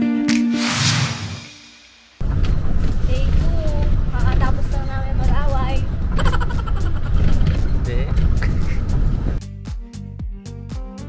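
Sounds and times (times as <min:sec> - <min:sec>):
golf cart motor rumble: 0:02.2 - 0:09.4
voices: 0:03.1 - 0:06.0.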